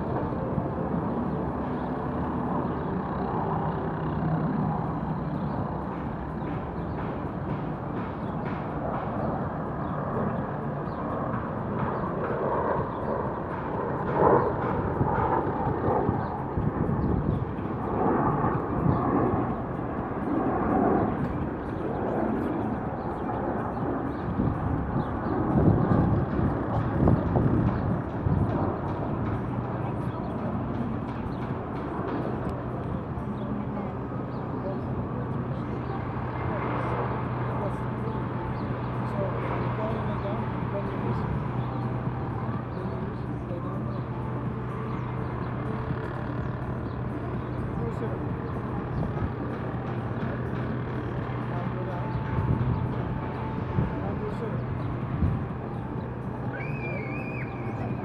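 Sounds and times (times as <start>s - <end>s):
low engine hum: 0.0s - 58.0s.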